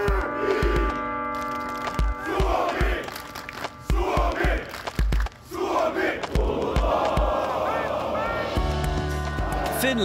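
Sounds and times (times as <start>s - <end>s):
crowd shouting and cheering: 2.0s - 10.0s
music with steady bass: 8.6s - 10.0s.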